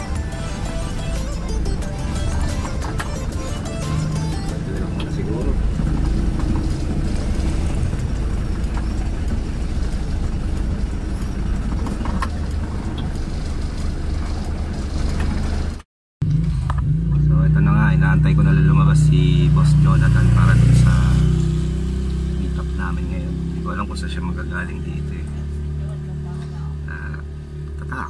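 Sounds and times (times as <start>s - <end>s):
background music: 0.0s - 5.6s
van engine and road noise: 0.0s - 28.0s.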